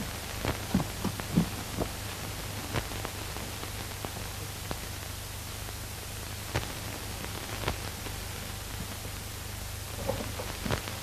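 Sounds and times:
film soundtrack hiss and hum: 0.0 - 11.0.

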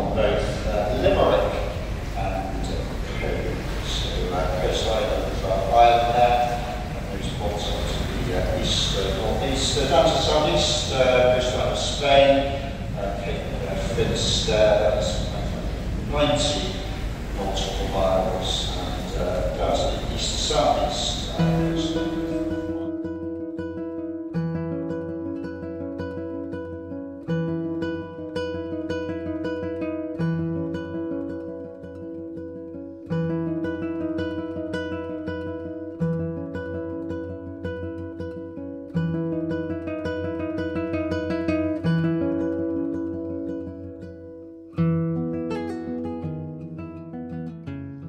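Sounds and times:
low guitar bass notes: 0.0 - 9.4, 21.1 - 23.0
plucked acoustic guitar melody: 0.0 - 48.0.

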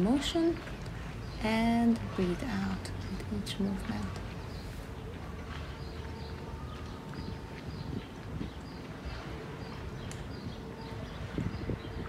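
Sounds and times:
faint steady hum: 0.0 - 12.0
small birds chirping: 0.2 - 12.0.

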